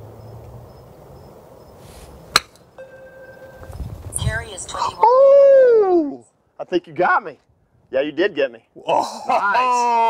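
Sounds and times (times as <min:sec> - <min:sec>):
golf club striking ball: 0:02.3 - 0:03.7.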